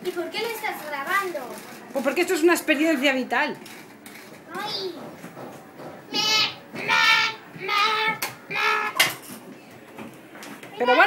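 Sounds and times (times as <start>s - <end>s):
child crying out: 7.6s - 9.0s.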